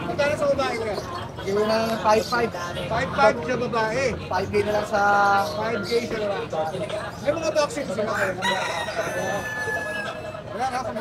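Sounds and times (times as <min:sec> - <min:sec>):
rooster crowing: 0:08.1 - 0:10.2.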